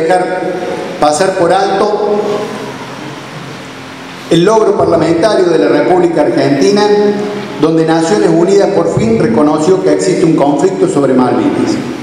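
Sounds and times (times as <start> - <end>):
speech through a microphone: 0.0 - 2.6, 4.3 - 12.0
room noise hiss: 0.0 - 12.0.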